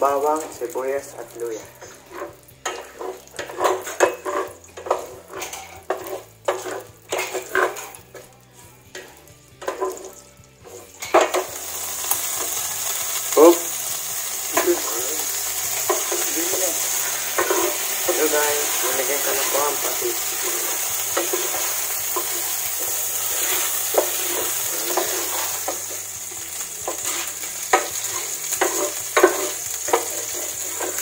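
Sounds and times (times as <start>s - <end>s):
frying sizzle: 0.0s - 31.0s
spatula scraping frying pan: 1.7s - 31.0s.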